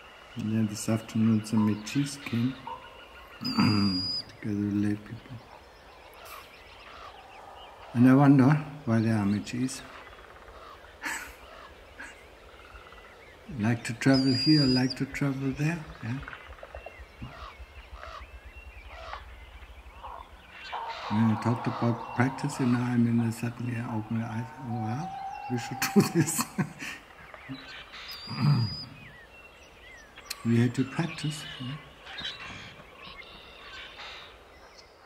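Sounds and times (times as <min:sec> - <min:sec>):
faint animal calls: 0:00.0 - 0:34.6.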